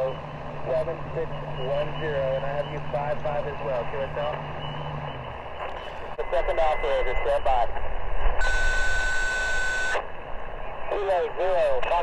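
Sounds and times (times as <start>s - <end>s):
voice over radio: 0.0s - 4.4s, 5.8s - 7.8s, 10.9s - 12.0s
radio static hiss: 0.0s - 12.0s
steady radio tone: 0.0s - 12.0s.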